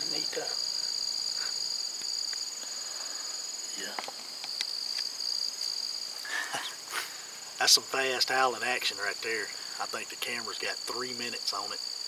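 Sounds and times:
insects trilling: 0:00.0 - 0:12.0
pulsing insect trill: 0:00.0 - 0:12.0.

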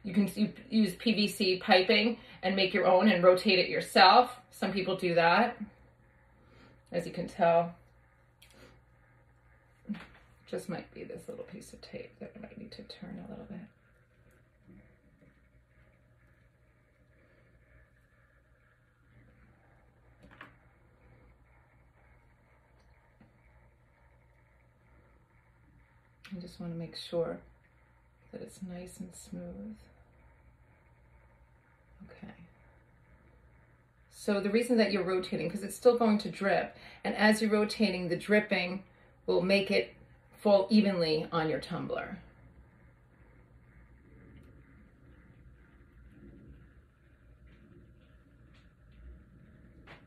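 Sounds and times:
faint low hum: 0:00.0 - 0:50.0.

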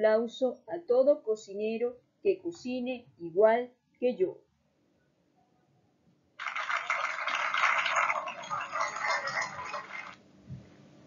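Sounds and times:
crowd clapping: 0:06.4 - 0:10.2.

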